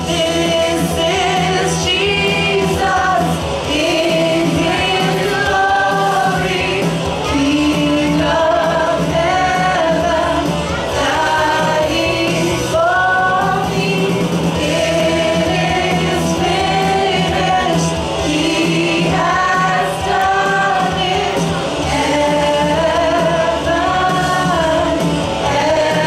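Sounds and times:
steady musical accompaniment: 0.0 - 26.0
voices singing worship song: 0.0 - 26.0.

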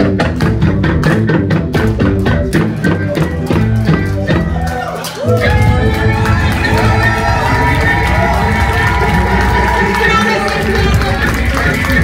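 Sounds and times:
band playing: 0.0 - 12.0
fast drum beats: 5.3 - 12.0.

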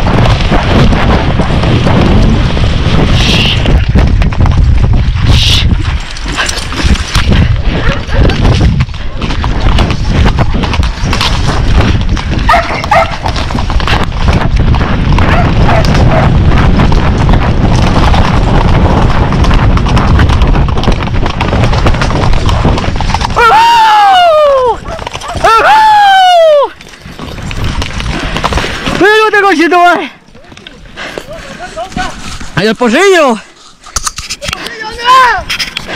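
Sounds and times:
wind rumble on microphone: 0.0 - 29.0
horse hoofbeats on dirt: 0.0 - 35.9.

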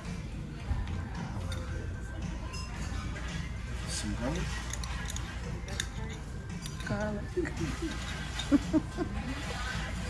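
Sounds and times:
background music: 0.0 - 10.0
utensils clicking on dishes: 2.5 - 10.0.

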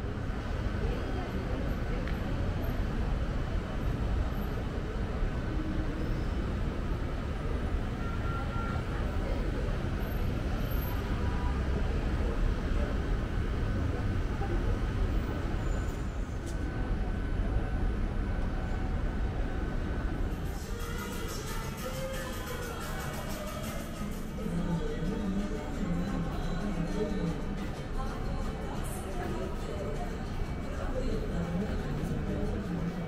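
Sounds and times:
city traffic rumble: 0.0 - 33.0.

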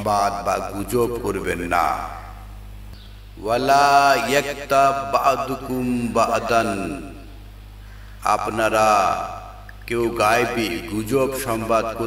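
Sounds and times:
man reciting melodically: 0.0 - 2.3, 3.4 - 7.3, 8.2 - 12.0.

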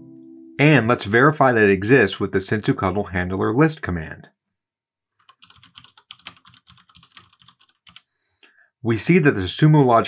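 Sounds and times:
computer keyboard typing: 5.2 - 8.1.

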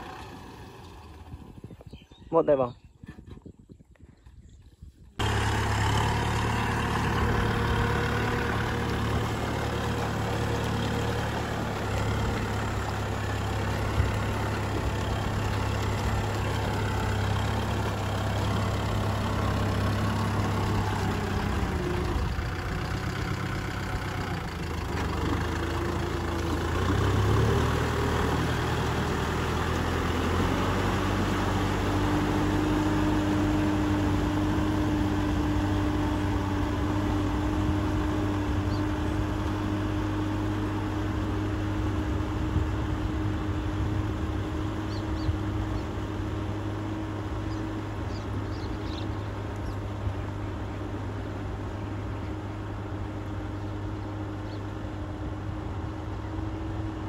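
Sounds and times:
tractor diesel engine running: 0.0 - 2.6, 5.1 - 57.0.

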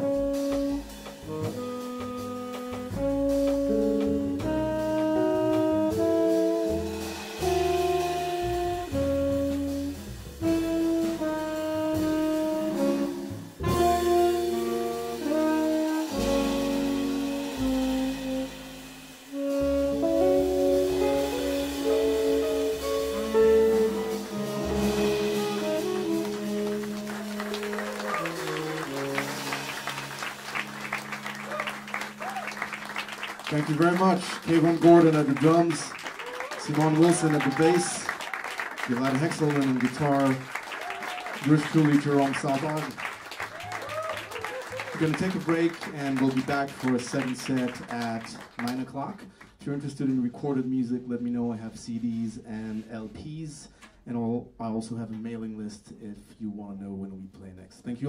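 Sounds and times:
live jazz band playing: 0.0 - 53.2
audience applause: 25.6 - 48.9.

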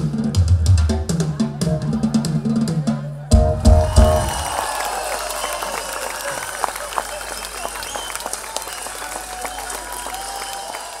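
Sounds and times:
crowd voices: 1.0 - 11.0
audience applauding: 3.6 - 11.0.

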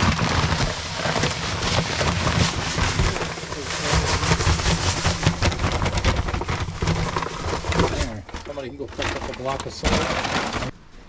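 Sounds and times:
grains pouring: 0.0 - 10.8.

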